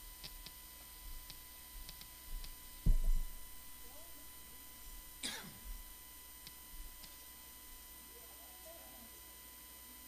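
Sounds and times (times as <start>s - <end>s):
person clearing throat: 5.2s - 5.8s.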